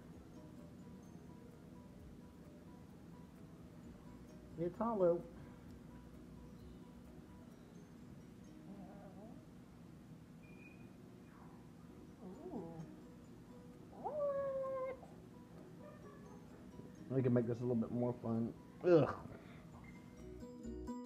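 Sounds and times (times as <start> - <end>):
dog whining: 12.2 - 12.9, 13.9 - 15.2.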